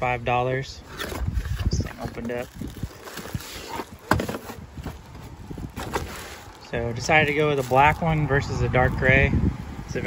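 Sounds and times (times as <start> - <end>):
cardboard box scraping and knocking: 0.9 - 6.4.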